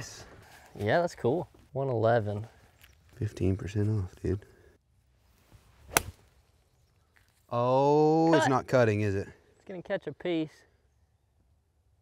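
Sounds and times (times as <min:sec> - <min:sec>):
golf club swish: 0:05.8 - 0:06.2
golf club striking ball: 0:05.9 - 0:06.2.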